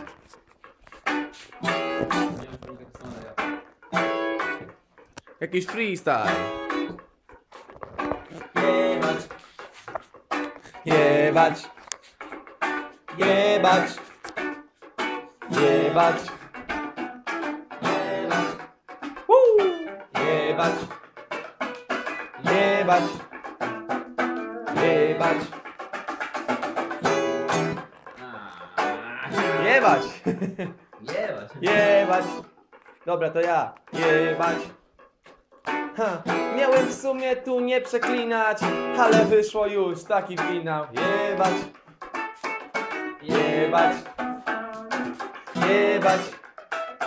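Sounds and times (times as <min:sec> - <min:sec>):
electric guitar funk chord stabs: 0:00.0 - 0:30.2, 0:33.8 - 0:37.4, 0:38.0 - 0:47.0
person's voice: 0:05.4 - 0:06.4.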